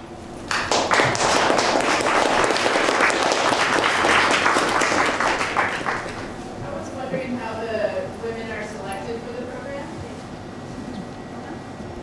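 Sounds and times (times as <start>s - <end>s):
audience applauding: 0.5s - 6.4s.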